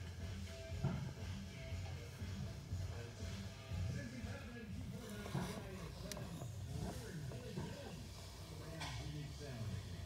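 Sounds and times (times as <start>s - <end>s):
faint indistinct voices: 0.4s - 10.0s.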